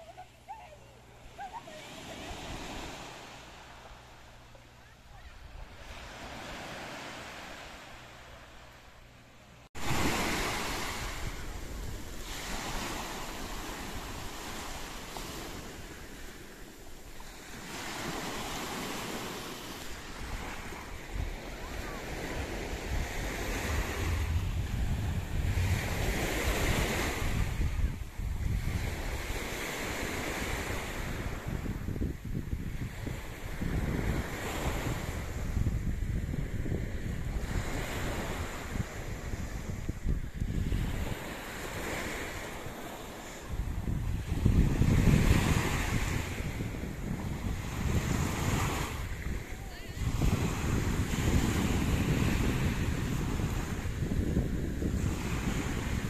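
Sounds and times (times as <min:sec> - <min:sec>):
sea waves washing onto beach: 0:00.0 - 0:56.0
wind buffeting microphone: 0:09.7 - 0:56.0.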